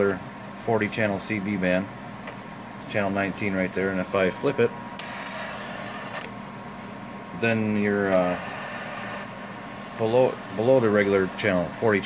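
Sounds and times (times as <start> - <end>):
radio static hiss: 2.9 - 6.4, 7.4 - 12.0.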